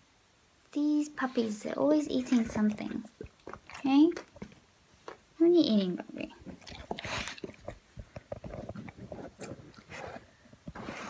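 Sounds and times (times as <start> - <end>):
dog chewing: 2.1 - 10.3.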